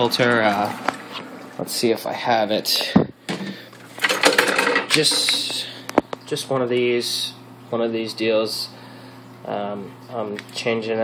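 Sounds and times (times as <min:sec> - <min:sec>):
plastic containers clicking and rattling: 0:04.0 - 0:05.6.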